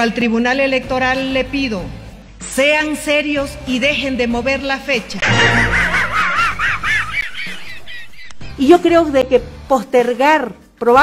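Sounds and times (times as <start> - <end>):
cartoon dog wheezy laugh: 5.2 - 8.2.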